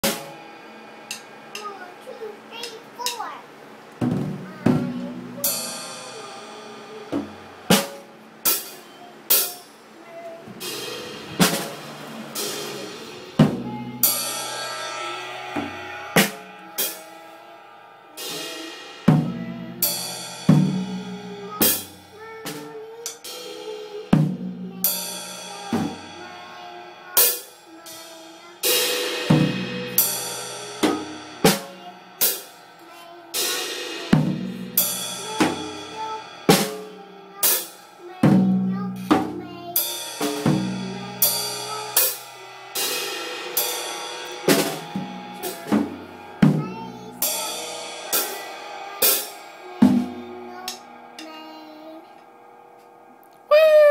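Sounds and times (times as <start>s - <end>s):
child hitting drums: 0.0s - 3.3s, 4.0s - 52.1s
cymbals ringing: 5.4s - 9.8s, 10.6s - 22.2s, 26.9s - 38.0s, 39.8s - 46.5s, 47.1s - 51.3s.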